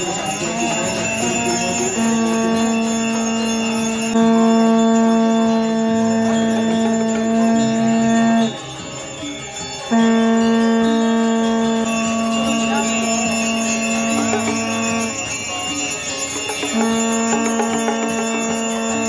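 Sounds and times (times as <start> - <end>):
bells jingling: 0.0 - 19.0
conch shells blown: 1.6 - 8.6, 9.9 - 15.5, 16.4 - 19.0.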